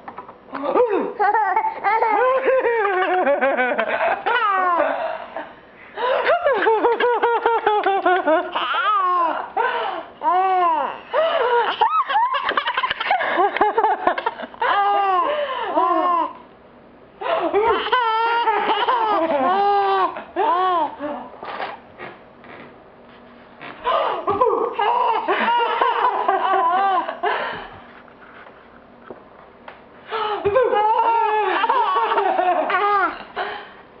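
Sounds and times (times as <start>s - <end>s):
baby laughing: 1.2s - 4.9s, 6.5s - 9.4s, 11.6s - 13.6s, 17.2s - 21.3s, 23.9s - 27.2s, 30.5s - 33.3s.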